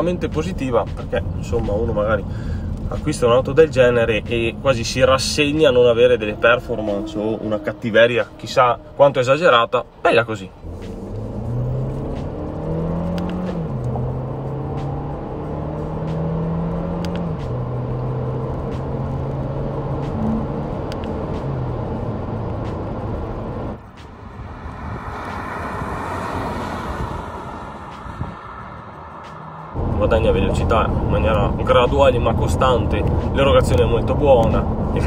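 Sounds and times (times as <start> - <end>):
car engine accelerating: 0.0 - 35.0
road and wind noise: 0.0 - 35.0.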